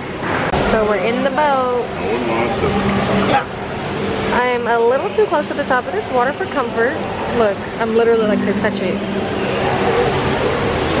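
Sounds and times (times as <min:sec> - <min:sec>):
water rushing and churning: 0:00.2 - 0:11.0
boat motor humming: 0:00.8 - 0:05.4, 0:06.2 - 0:10.8.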